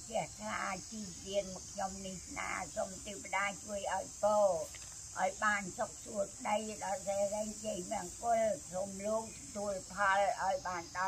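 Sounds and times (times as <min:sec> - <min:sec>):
high insect buzz: 0:00.0 - 0:11.0
woman reciting in chant-like tone: 0:00.0 - 0:11.0.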